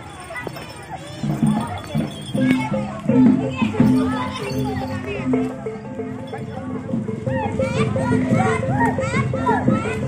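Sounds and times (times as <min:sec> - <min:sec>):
children shouting and chattering: 0:00.0 - 0:10.0
gamelan music: 0:00.1 - 0:10.0.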